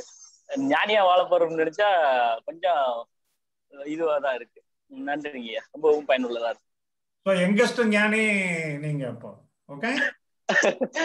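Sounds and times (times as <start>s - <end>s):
man speaking: 3.7s - 10.1s
man laughing: 9.7s - 11.0s.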